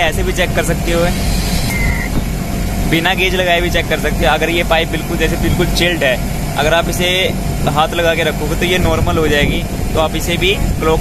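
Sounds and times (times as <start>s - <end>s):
air conditioner unit humming: 0.0s - 11.0s.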